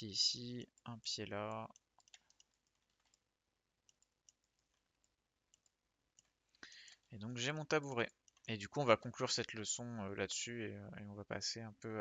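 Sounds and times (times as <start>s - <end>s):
computer mouse clicks: 1.5s - 3.2s, 3.8s - 7.1s.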